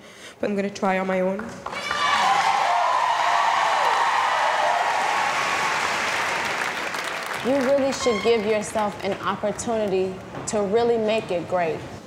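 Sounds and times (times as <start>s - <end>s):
large audience applauding: 1.9s - 8.2s
woman speaking: 7.4s - 11.9s.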